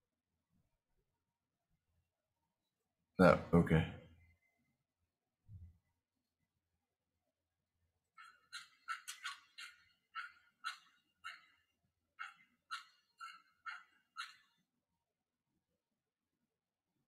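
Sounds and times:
dog barking: 0:08.2 - 0:11.6, 0:12.2 - 0:14.4.

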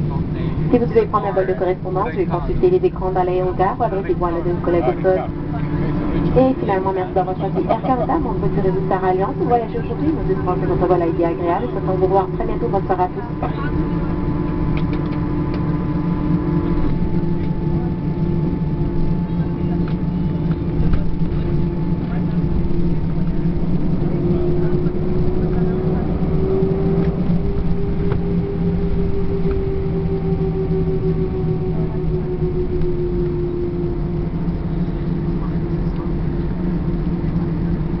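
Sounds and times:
jet engine drone in cabin: 0:00.0 - 0:38.0.

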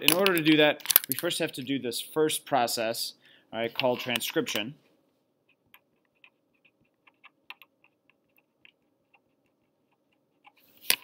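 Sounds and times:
pen scratching on paper: 0:05.5 - 0:10.8.

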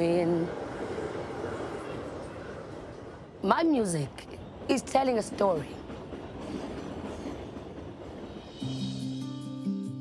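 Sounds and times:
train rumbling: 0:00.0 - 0:09.6.

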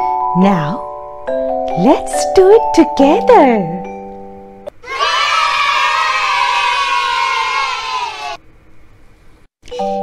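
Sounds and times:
children cheering: 0:04.8 - 0:08.4.

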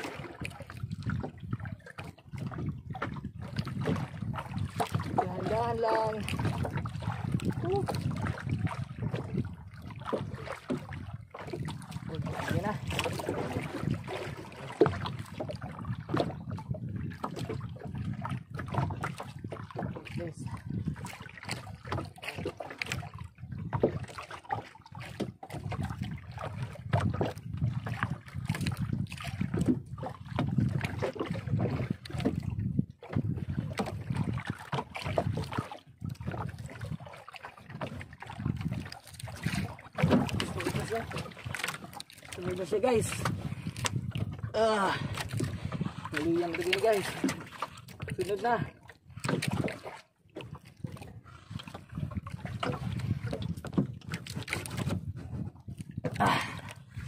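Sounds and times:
water slapping against boat hull: 0:00.0 - 0:57.0
wind buffeting microphone: 0:00.0 - 0:57.0.

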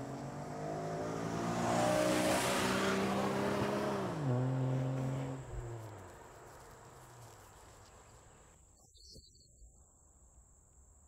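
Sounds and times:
car driving past: 0:00.0 - 0:07.4.

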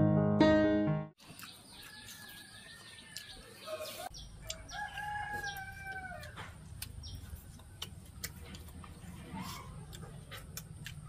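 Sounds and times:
rooster crowing: 0:01.8 - 0:06.5.

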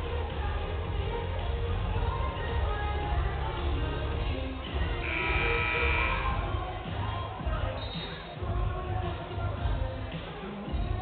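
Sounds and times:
background music: 0:00.0 - 0:11.0
arena horn buzzer: 0:05.0 - 0:06.5.

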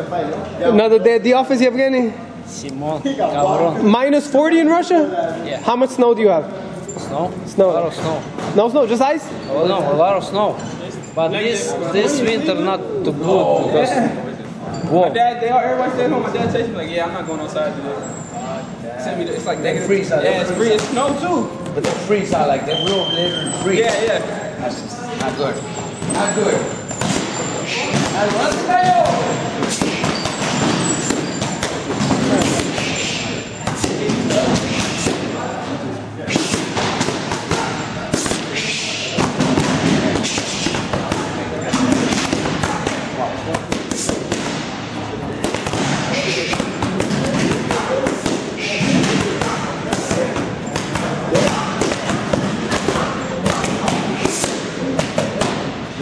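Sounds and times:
gym voices: 0:00.0 - 0:56.0
boxing gloves striking mitts: 0:26.9 - 0:35.3, 0:36.3 - 0:44.8, 0:45.4 - 0:55.8.

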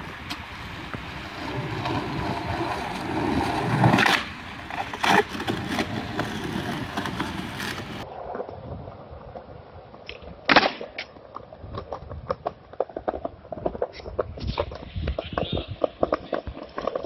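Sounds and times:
skateboard wheels rolling over paving: 0:00.0 - 0:17.0.

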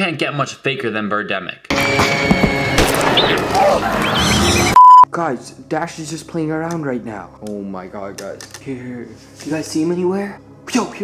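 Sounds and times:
censor bleep: 0:04.7 - 0:05.1.

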